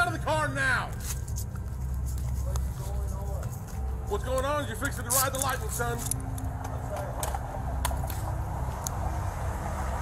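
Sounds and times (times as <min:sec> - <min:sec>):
vehicles idling: 0:00.0 - 0:10.0.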